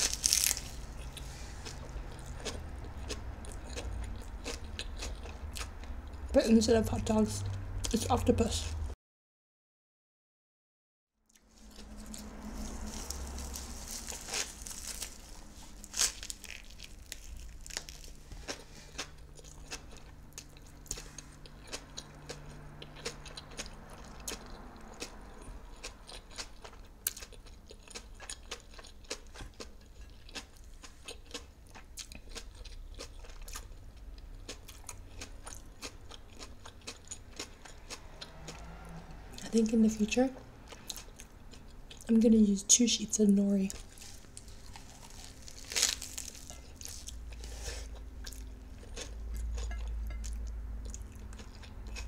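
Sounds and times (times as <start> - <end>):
chewing crisp seaweed: 0.0 - 6.2, 11.3 - 38.9, 40.6 - 42.1, 43.6 - 52.0.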